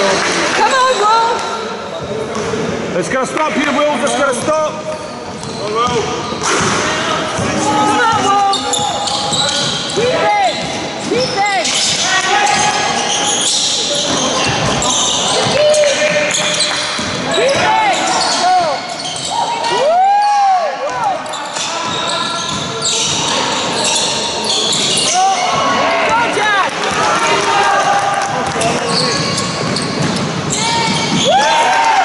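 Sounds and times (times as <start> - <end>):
sneakers squeaking on wooden court: 4.0 - 20.3, 20.9 - 27.2, 28.4 - 31.4
basketball bouncing: 14.0 - 17.7, 26.1 - 27.4, 28.4 - 31.3.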